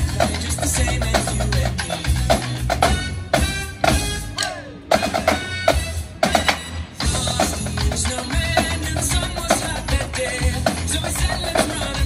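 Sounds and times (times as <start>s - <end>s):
backing music: 0.0s - 12.0s
marching snare drums: 0.0s - 12.0s.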